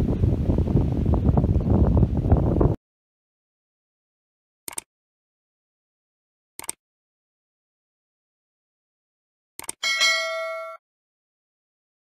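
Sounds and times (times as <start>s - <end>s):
notification bell ding: 9.8s - 10.8s.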